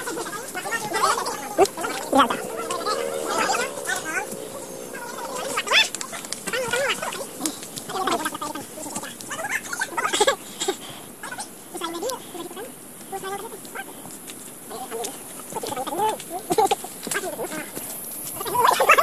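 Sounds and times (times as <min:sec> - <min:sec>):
people calling: 0:00.0 - 0:08.0
wavering vocal sounds: 0:00.5 - 0:08.3.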